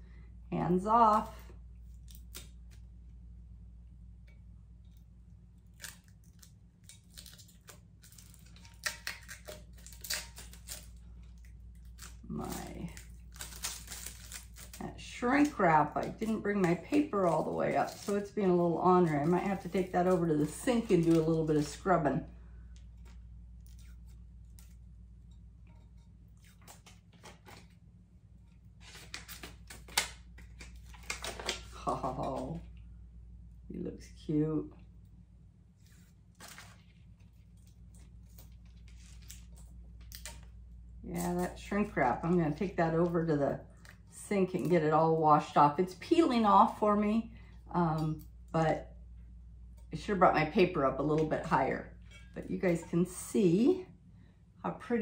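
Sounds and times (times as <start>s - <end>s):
low steady hum: 0.0s - 55.0s
plastic wrap crinkling and tearing: 5.6s - 22.0s, 28.8s - 32.6s.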